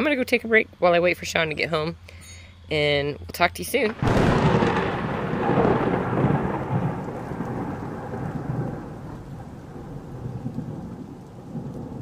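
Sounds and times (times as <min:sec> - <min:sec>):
rain: 0:03.8 - 0:12.0
rolling thunder: 0:03.9 - 0:12.0.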